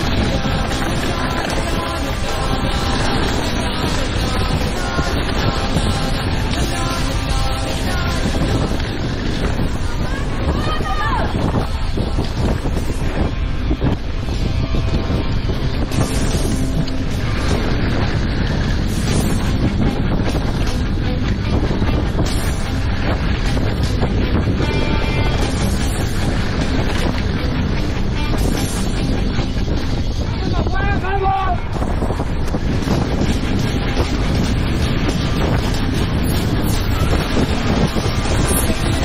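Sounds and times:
mountain bike rumble and rattle: 0.0 - 39.0
wind buffeting microphone: 0.0 - 39.0.

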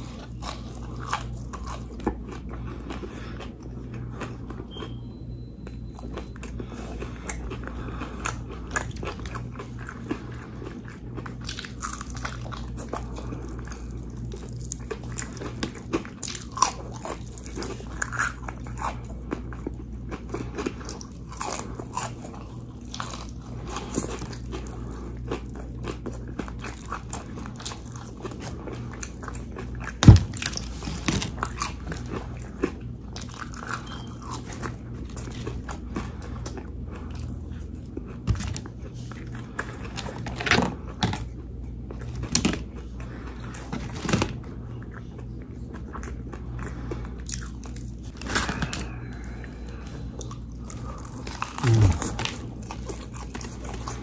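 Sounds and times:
chewing and crunching: 0.0 - 54.0
steady low hum: 0.0 - 54.0.

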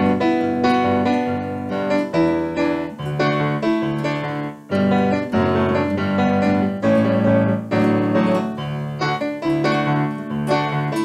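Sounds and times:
electric piano chords: 0.0 - 11.0.

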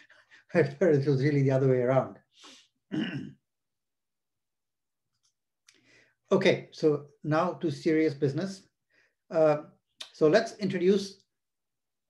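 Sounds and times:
man clearing his throat: 2.9 - 3.4
short breath: 5.7 - 6.2.

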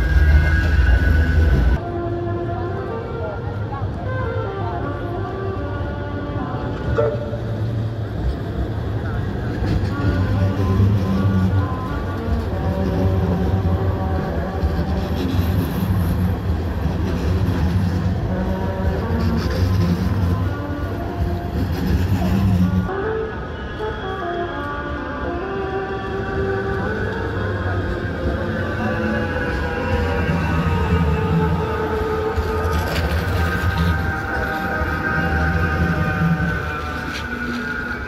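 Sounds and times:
wheel-on-rail noise: 0.0 - 1.9, 5.2 - 38.0
tram passing with electric hum: 0.0 - 38.0.

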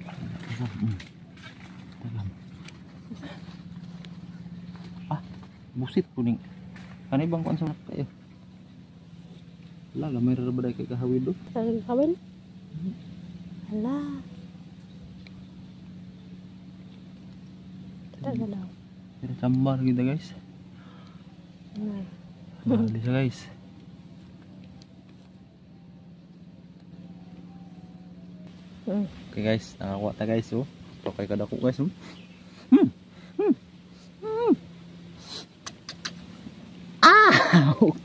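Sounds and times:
low motor hum: 0.0 - 38.0.

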